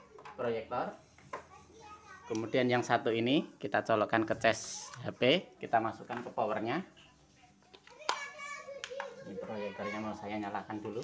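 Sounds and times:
child's voice: 0:01.4 - 0:02.6, 0:07.0 - 0:10.2.

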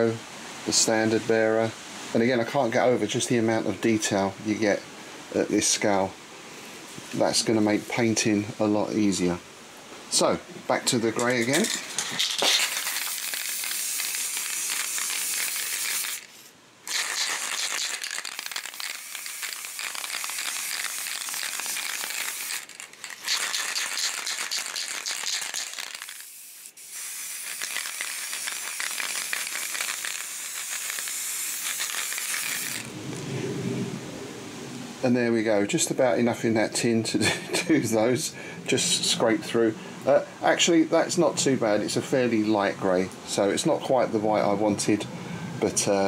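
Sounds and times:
aerosol spray can hissing: 0:12.5 - 0:32.9.

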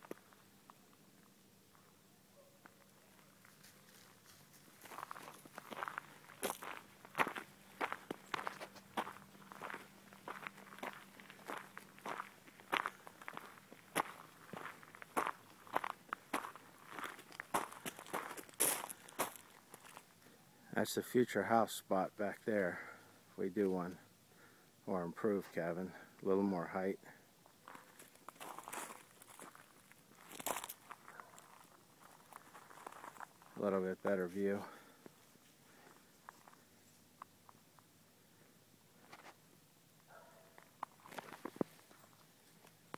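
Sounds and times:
footsteps crunching dry leaves: 0:03.5 - 0:20.1, 0:27.6 - 0:34.5.

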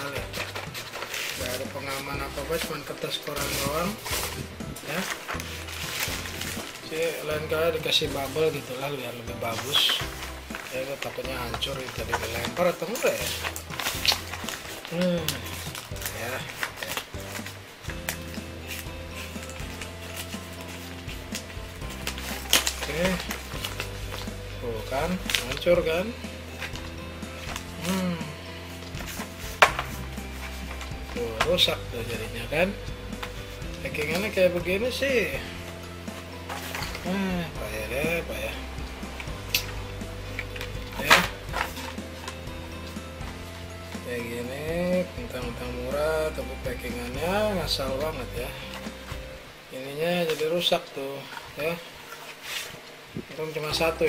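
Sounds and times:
background music: 0:00.0 - 0:54.0
newspaper crinkling and rustling: 0:00.0 - 0:54.0
plastic packaging crackling: 0:00.0 - 0:54.0.

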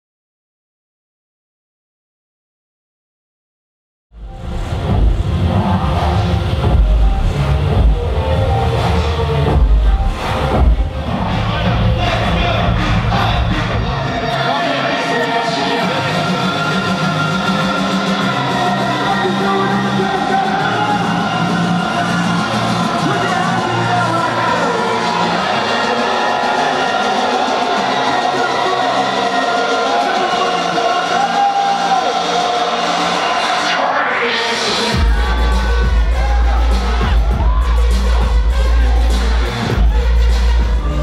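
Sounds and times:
heavy bass drop: 0:04.1 - 0:14.3, 0:34.9 - 0:41.0
electronic dance music: 0:04.2 - 0:41.0.

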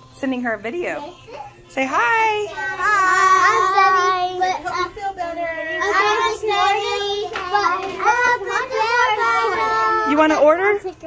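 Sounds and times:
children calling in sing-song tones: 0:02.4 - 0:10.3.

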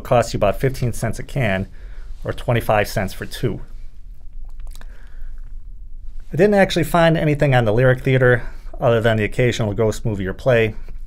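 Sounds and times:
low steady hum: 0:00.0 - 0:11.0
mouth clicks and lip sounds: 0:04.0 - 0:05.8.

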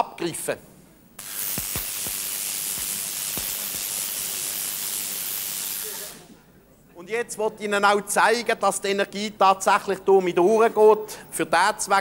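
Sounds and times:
tesla coil sparks hissing: 0:01.2 - 0:06.4.

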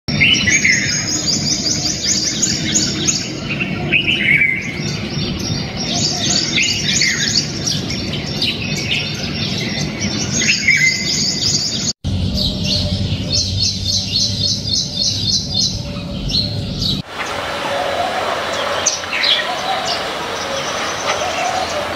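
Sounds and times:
small birds chirping chorus: 0:00.1 - 0:21.9
downward-sliding bird call: 0:17.0 - 0:21.9.

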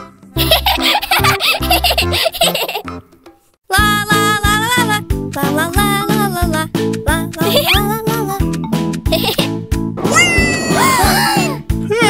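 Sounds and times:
bouncy background music: 0:00.0 - 0:12.0
high-pitched cartoon giggling: 0:00.4 - 0:02.9, 0:07.4 - 0:07.9, 0:09.1 - 0:09.5.

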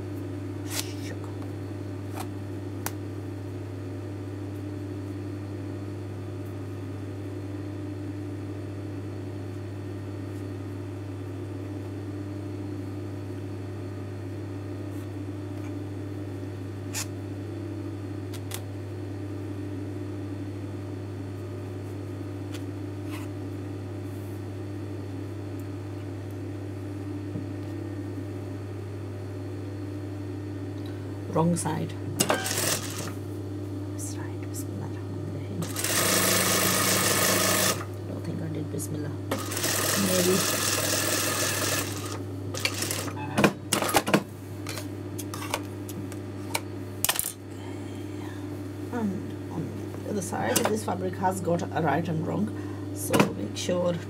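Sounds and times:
low electrical hum: 0:00.0 - 0:54.0.

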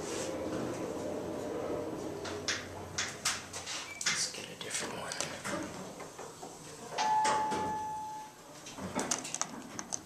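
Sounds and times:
elevator electronic ding: 0:07.0 - 0:08.3.

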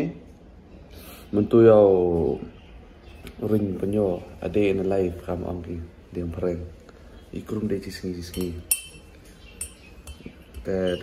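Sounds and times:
hard object clinking: 0:08.2 - 0:11.0.

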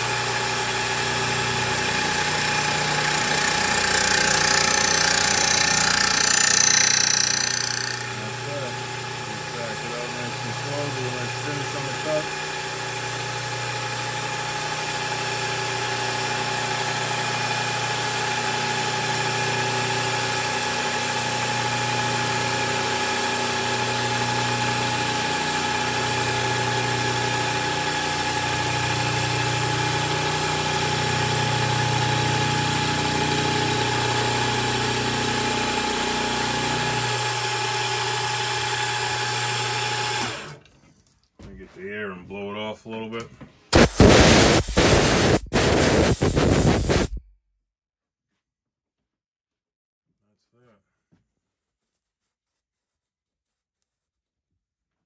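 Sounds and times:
milling machine humming: 0:00.0 - 0:13.0, 0:20.9 - 0:40.5, 0:43.8 - 0:47.2.

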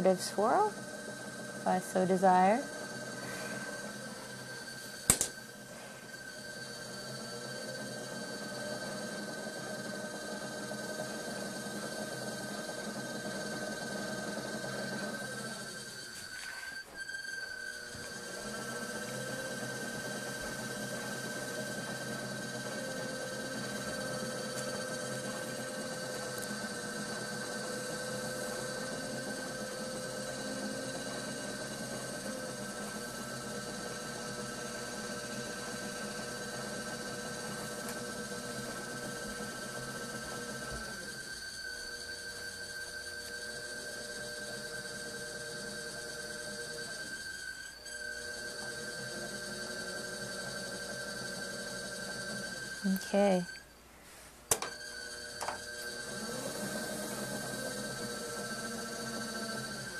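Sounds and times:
pottery wheel motor humming: 0:00.0 - 0:59.9.

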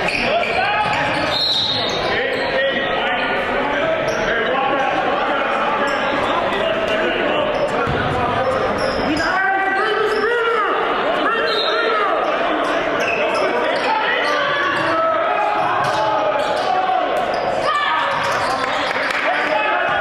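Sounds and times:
many voices calling out: 0:08.6 - 0:20.0.

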